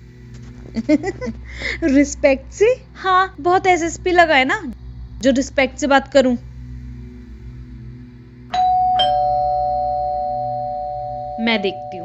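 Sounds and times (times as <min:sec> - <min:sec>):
doorbell two-note chime: 0:08.5 - 0:12.0.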